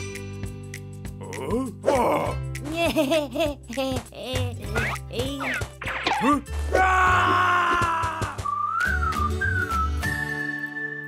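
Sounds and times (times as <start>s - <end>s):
cartoon background music: 0.0s - 11.0s
character grunts and cries: 1.2s - 2.4s
wavering whistle-like tone: 8.4s - 11.0s.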